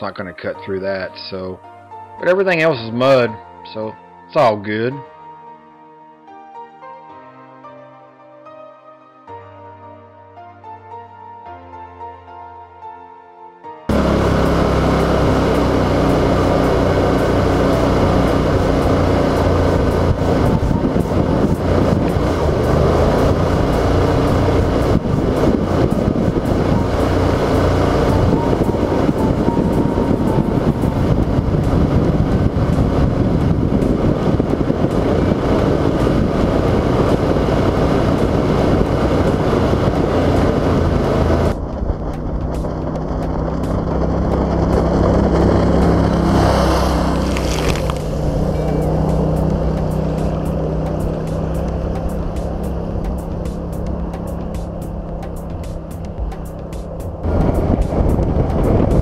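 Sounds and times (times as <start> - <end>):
boat motor droning: 13.9 - 59.0
water spray hissing: 46.2 - 56.5.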